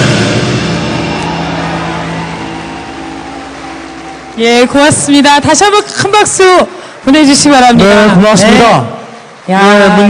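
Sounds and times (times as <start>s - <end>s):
held musical note: 0.0s - 6.1s
audience applauding: 0.7s - 8.2s.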